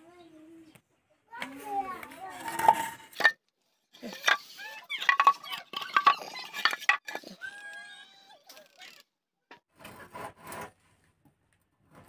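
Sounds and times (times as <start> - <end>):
voices: 0.0 - 3.1.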